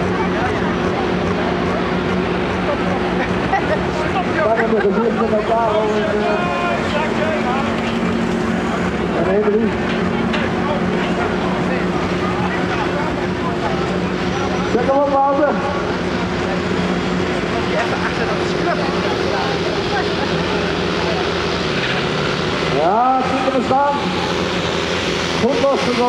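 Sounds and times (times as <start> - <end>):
diesel engine running: 0.0 - 26.0
murmur of crowd voices: 0.0 - 26.0.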